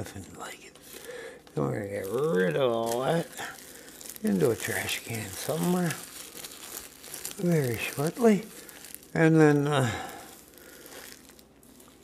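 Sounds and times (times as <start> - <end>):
low hiss: 0.0 - 12.0
plastic wrap crinkling: 0.0 - 12.0.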